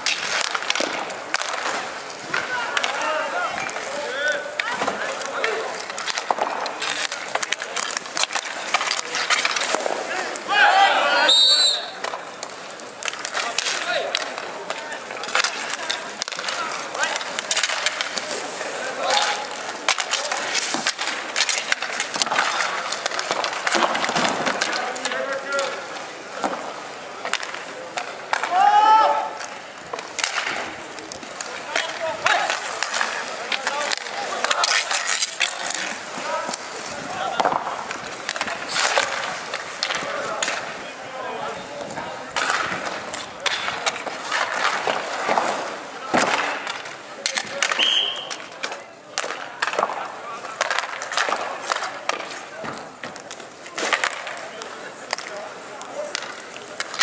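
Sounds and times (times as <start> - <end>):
hockey sticks clacking: 0.0 - 57.0
skate wheels rolling and scraping: 0.0 - 57.0
players calling out: 0.2 - 26.5, 47.4 - 53.0
loud shout: 10.1 - 12.0, 28.4 - 29.4
high whistle: 11.3 - 12.0, 47.8 - 48.4.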